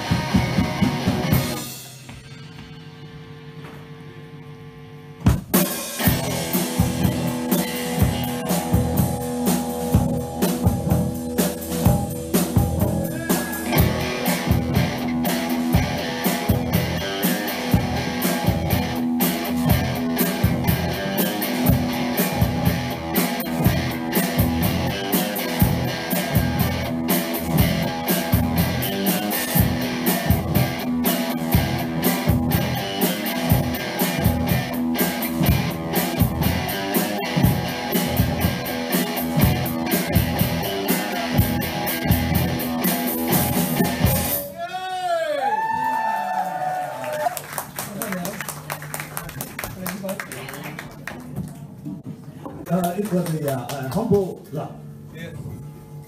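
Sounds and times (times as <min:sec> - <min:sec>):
drum kit beat: 0:00.0 - 0:03.8, 0:05.2 - 0:44.6
electric guitar: 0:00.0 - 0:03.8, 0:05.3 - 0:44.6.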